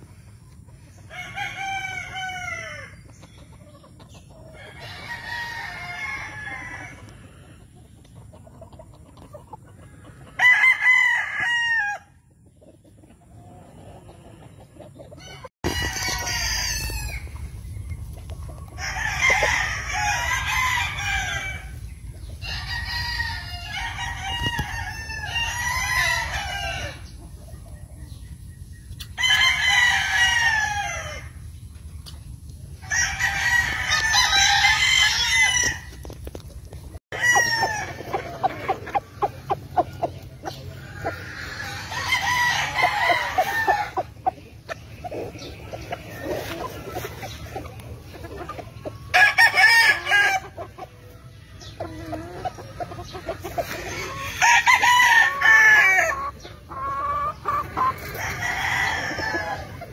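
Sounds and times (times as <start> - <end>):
roosters crowing: 0.0 - 3.3, 4.0 - 7.8, 9.2 - 12.4, 13.3 - 27.4, 29.0 - 31.5, 32.6 - 36.2, 36.8 - 59.9.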